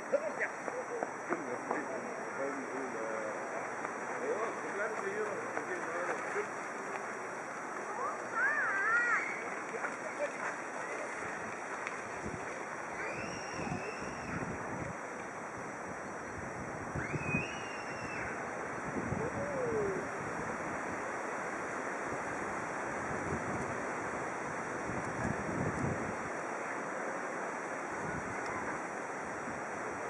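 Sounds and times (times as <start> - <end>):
wind on microphone: 11.2 - 21.1, 22.0 - 26.4, 27.9 - 30.0.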